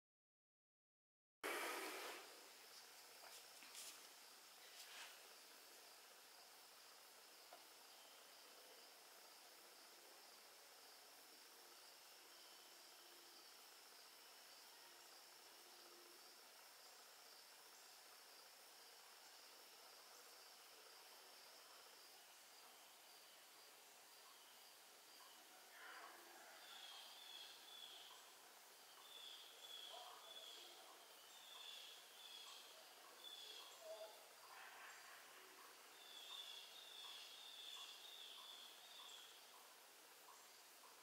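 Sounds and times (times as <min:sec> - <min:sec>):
faint steady hiss: 0:01.4 - 0:41.0.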